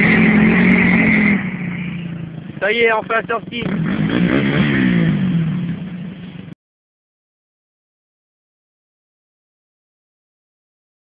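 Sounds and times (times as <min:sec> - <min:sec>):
quad engine pulling away: 0:00.0 - 0:06.6.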